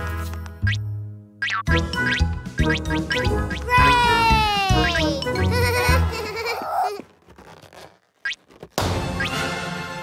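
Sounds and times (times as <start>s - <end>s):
music: 0.0s - 6.2s, 8.7s - 10.0s
balloon popping: 6.6s - 9.5s.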